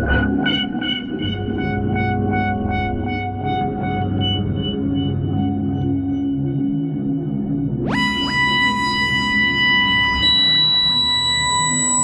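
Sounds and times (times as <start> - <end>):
dark ambient electronic music: 0.0 - 12.0.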